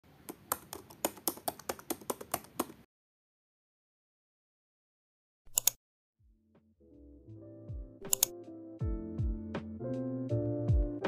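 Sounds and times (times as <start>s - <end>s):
computer keyboard typing: 0.3s - 2.9s, 8.1s - 8.3s.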